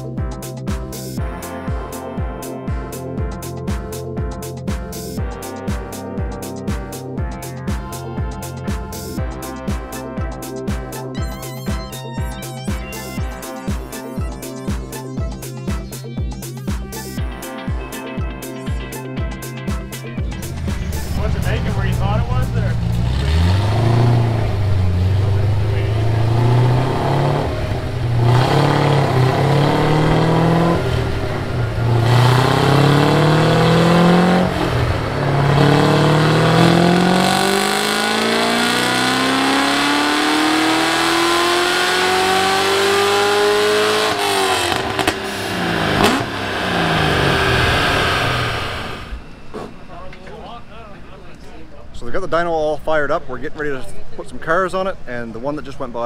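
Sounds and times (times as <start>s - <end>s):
car engine revving on dynamometer: 20.4s - 49.4s
sharp exhaust crack: 20.4s - 50.2s.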